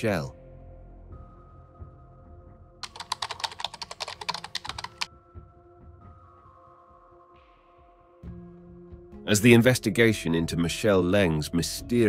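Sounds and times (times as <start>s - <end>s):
soft background music: 0.0s - 12.0s
rapid sharp clicks: 2.8s - 5.1s.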